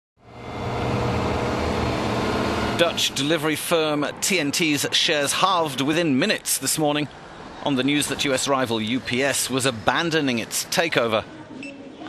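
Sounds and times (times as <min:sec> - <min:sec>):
truck engines running: 0:00.2 - 0:11.2.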